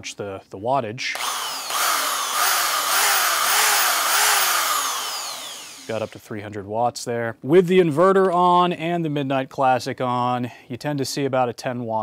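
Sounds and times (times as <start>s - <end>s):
electric drill spinning: 1.1s - 6.3s.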